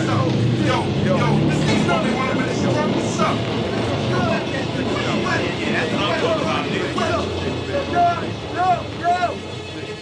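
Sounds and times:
indistinct overlapping voices: 0.0s - 10.0s.

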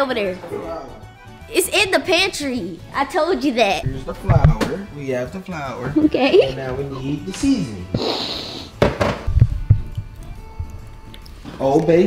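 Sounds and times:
dull thumps: 3.8s - 4.8s, 8.8s - 10.7s
sharp knocks on cabinets: 8.8s - 9.9s.

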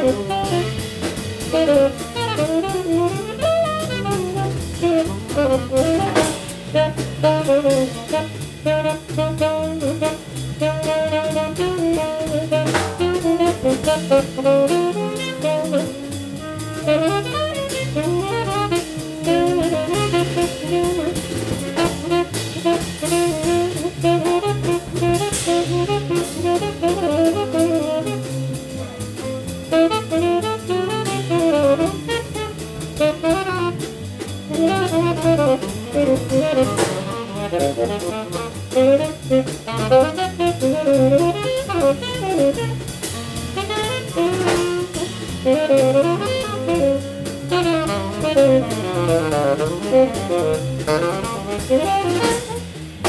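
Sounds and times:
double bass: 0.0s - 53.0s
drum kit: 0.0s - 53.0s
tenor saxophones playing: 0.0s - 53.0s.

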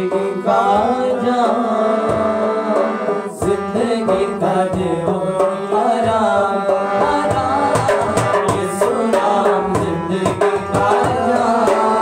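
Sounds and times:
harmonium chords: 0.0s - 12.0s
man singing: 0.0s - 12.0s
hand drum beating: 3.4s - 6.4s, 7.0s - 12.0s.

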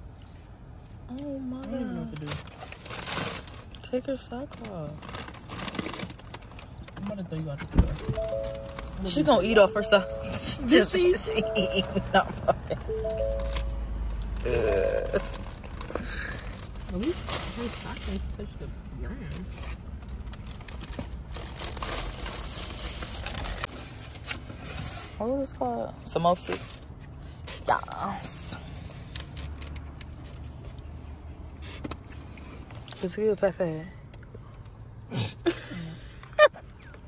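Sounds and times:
food packaging crinkling: 2.2s - 3.8s, 4.6s - 6.9s, 20.1s - 23.8s.

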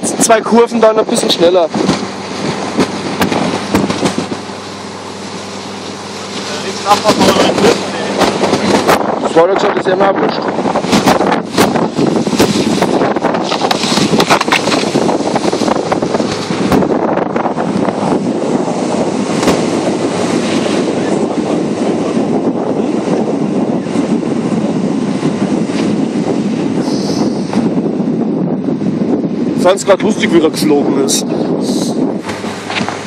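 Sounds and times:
car tyres rolling on snow: 0.0s - 33.0s
wind on microphone: 0.0s - 33.0s.

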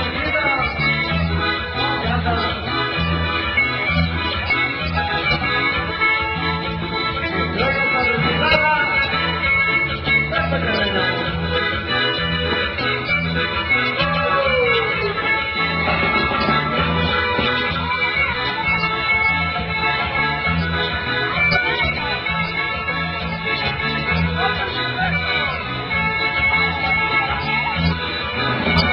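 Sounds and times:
organ-like chords: 0.0s - 28.9s
pulsing bass beat: 0.0s - 28.9s.

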